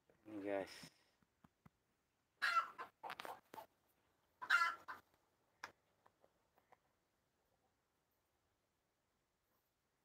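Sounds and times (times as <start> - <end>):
chicken clucking: 2.4 - 5.2.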